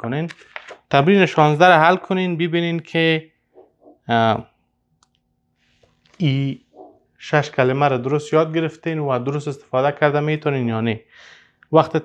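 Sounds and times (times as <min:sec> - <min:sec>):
man speaking: 0:00.0 - 0:03.3, 0:04.0 - 0:04.5, 0:06.2 - 0:11.1, 0:11.7 - 0:12.0.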